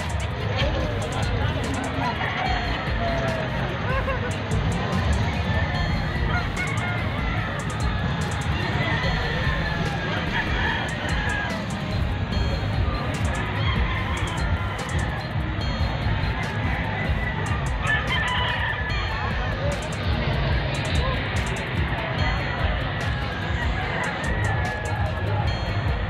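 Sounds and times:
background music with low beat: 0.0s - 26.0s
crowd din in hall: 0.0s - 26.0s
roosters crowing: 1.6s - 12.0s, 13.0s - 15.7s, 16.4s - 20.0s, 20.7s - 25.5s
rooster crowing: 8.3s - 11.7s, 17.4s - 19.2s, 23.6s - 25.2s.

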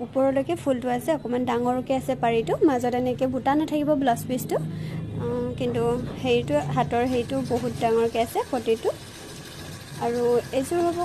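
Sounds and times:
woman speaking: 0.0s - 9.0s, 10.0s - 11.0s.

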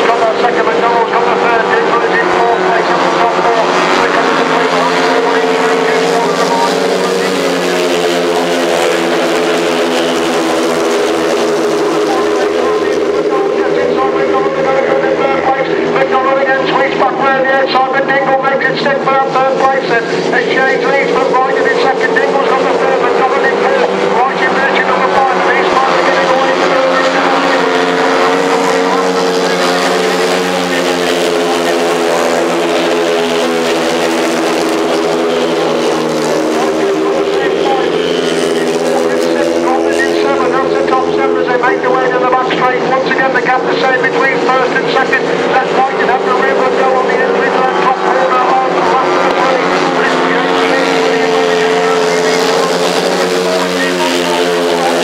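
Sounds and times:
racing motorcycle engines: 0.0s - 55.0s.

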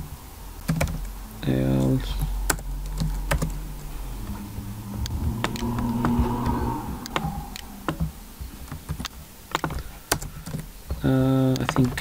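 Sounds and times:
keyboard typing: 0.6s - 1.2s, 1.8s - 3.6s, 7.0s - 12.0s.

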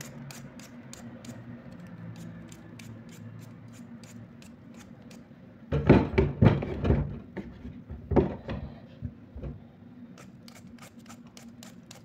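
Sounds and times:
peeler scraping potato: 0.0s - 5.2s, 10.2s - 12.0s
loud knocks and rustles: 5.7s - 8.6s.

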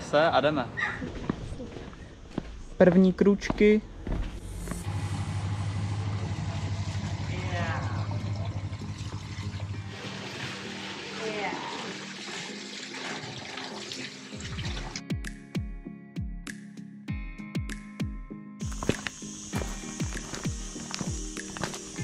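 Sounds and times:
steady low hum: 3.9s - 9.7s
fountain water splashing: 8.3s - 14.4s
background music with beat: 14.7s - 22.0s.

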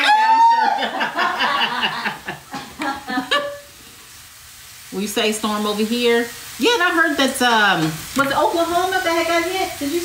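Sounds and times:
person laughing: 0.0s - 3.7s
food sizzling in a pan: 0.0s - 10.0s.

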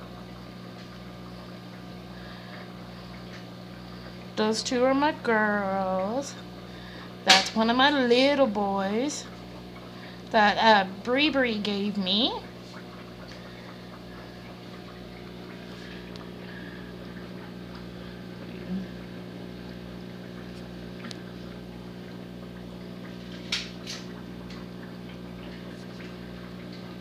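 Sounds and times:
aquarium pump humming: 0.0s - 27.0s
moving water: 0.0s - 27.0s.

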